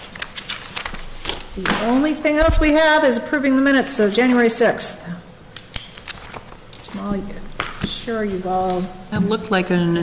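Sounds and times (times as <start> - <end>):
paper rustling and shuffling: 0.0 - 2.7, 5.8 - 9.0.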